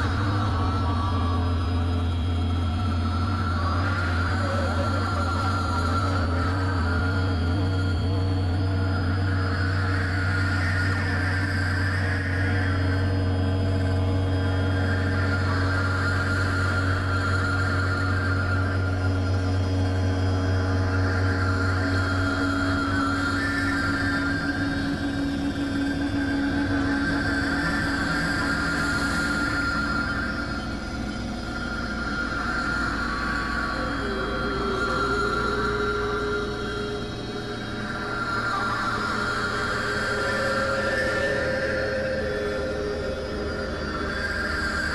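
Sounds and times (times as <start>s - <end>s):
synthesizer drone: 0.0s - 44.9s.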